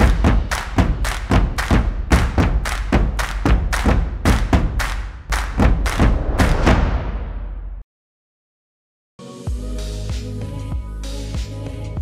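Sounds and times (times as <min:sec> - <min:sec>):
deep bass: 0:00.0 - 0:07.8
heavy percussive hits: 0:00.0 - 0:07.8.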